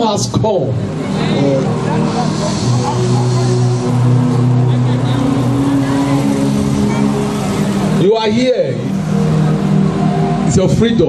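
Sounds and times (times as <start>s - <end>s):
sustained keyboard chords: 0.0s - 11.0s.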